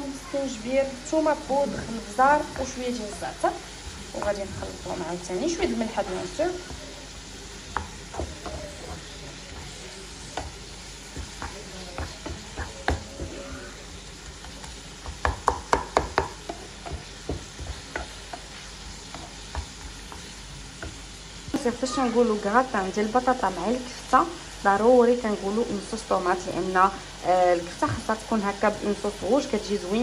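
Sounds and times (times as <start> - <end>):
meat sizzling in a frying pan: 0.0 - 30.0
wooden spoon scraping a pan: 1.5 - 21.6
spoon knocking on pan: 7.6 - 13.6, 14.4 - 21.7.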